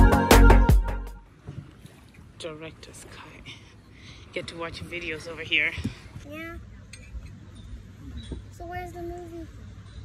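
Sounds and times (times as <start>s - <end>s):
wind: 0.0s - 10.0s.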